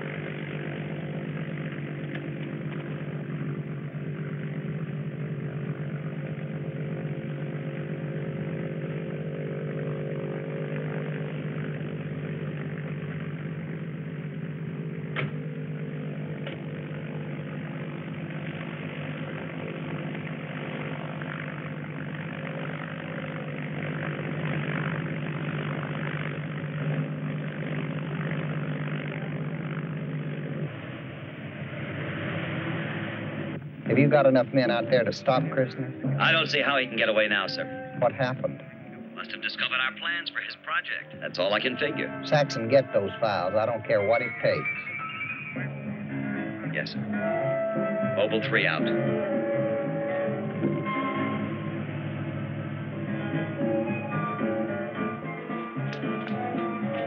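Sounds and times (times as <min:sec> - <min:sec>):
steady engine drone: 0:00.0 - 0:57.0.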